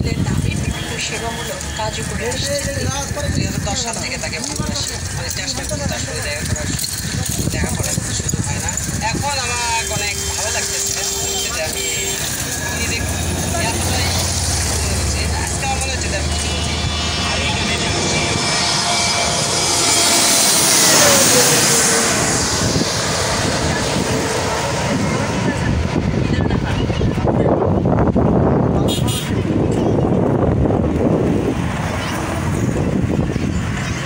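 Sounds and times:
jet airliner passing overhead: 0:00.0 - 0:34.0.

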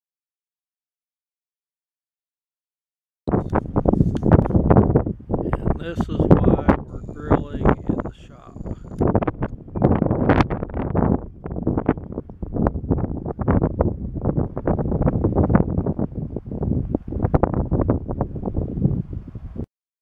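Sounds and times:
strong gusting wind on microphone: 0:03.3 - 0:19.7.

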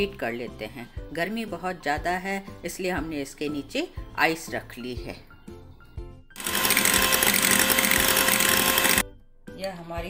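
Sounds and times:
electric hand mixer whine: 0:06.4 - 0:09.0.

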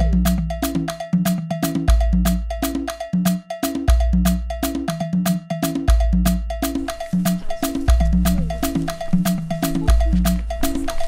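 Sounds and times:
fast cowbell-like percussion rhythm: 0:00.0 - 0:11.0
deep bass notes: 0:06.2 - 0:11.0.

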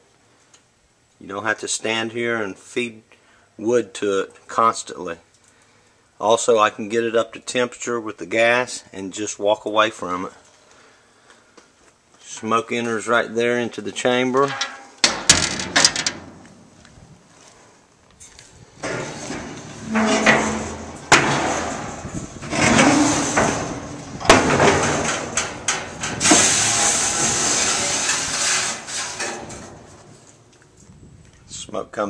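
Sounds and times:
metal knocks: 0:14.4 - 0:16.5, 0:18.8 - 0:28.2
metal rasping scrapes: 0:18.8 - 0:24.1, 0:25.1 - 0:29.9.

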